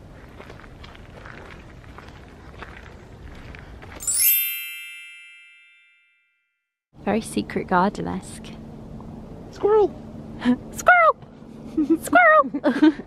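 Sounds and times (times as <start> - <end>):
shimmering chime sound effect: 4.0 - 6.6.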